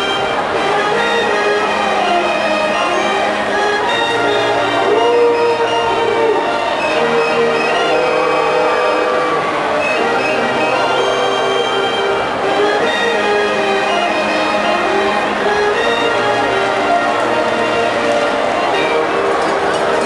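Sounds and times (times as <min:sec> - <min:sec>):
brass band playing held chords: 0:00.0 - 0:20.0.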